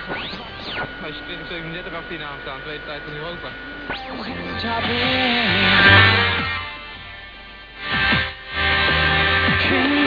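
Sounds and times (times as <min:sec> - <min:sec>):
steady radio whistle: 0:00.0 - 0:06.9.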